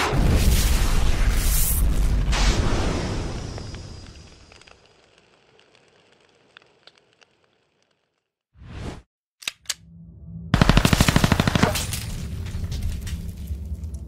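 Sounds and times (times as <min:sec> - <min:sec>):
blast: 0:00.0 - 0:04.0
machine-gun fire: 0:10.6 - 0:12.1
low rumble: 0:12.0 - 0:14.0.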